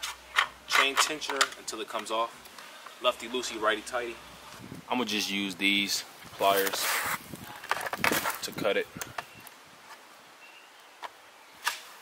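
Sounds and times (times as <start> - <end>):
bird chirps: 10.4 - 11.6.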